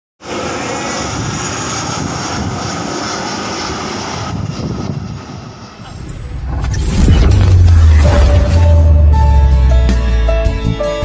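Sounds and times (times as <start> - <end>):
jet airliner passing overhead: 0.2 - 10.5.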